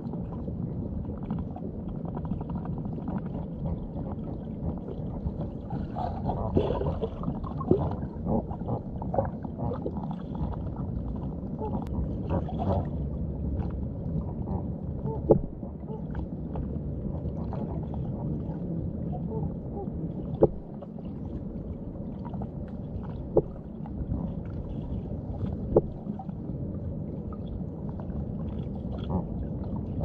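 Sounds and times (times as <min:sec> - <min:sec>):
underwater rumble of moving water: 0:00.0 - 0:30.0
sharp underwater clicks: 0:15.0 - 0:15.5, 0:20.4 - 0:20.7.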